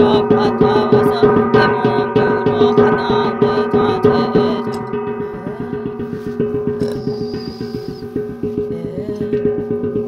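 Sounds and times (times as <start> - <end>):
brass gong struck rapidly: 0.0 - 10.0.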